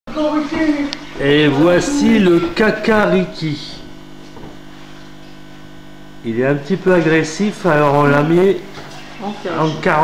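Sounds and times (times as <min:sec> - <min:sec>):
electrical mains hum: 0:00.1 - 0:10.0.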